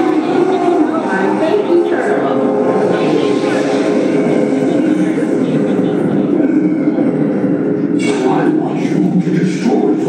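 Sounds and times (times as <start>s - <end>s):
film soundtrack rumbling: 0.0s - 10.0s
voices from speakers: 0.0s - 10.0s.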